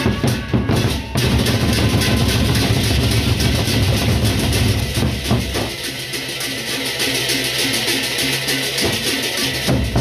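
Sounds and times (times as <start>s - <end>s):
large drums beaten: 0.0s - 10.0s
metallic cymbal haze: 1.0s - 10.0s.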